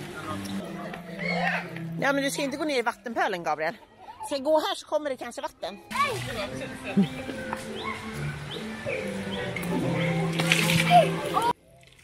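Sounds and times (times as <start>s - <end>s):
background music: 0.0s - 12.0s
children's voices: 5.6s - 8.8s, 10.7s - 11.6s.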